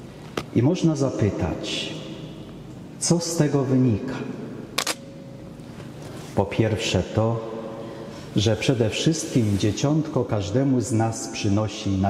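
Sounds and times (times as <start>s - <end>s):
voice echo in large hall: 0.0s - 12.0s
sharp click: 4.8s - 5.1s.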